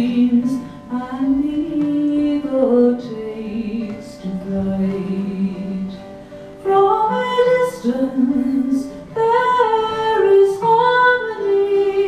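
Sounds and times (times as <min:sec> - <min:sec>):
acoustic guitar: 0:00.0 - 0:12.0
woman singing folk song: 0:00.0 - 0:12.0.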